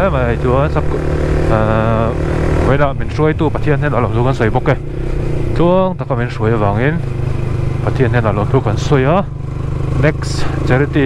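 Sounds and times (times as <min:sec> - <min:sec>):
motorcycle engine droning: 0:00.0 - 0:11.0
rider talking: 0:00.0 - 0:11.0.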